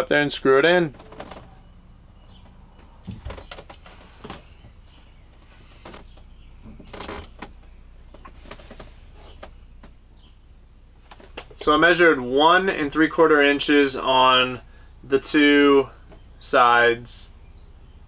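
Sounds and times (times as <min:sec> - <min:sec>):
low steady hum: 0:00.0 - 0:18.0
light clicks and rustles: 0:02.3 - 0:10.0.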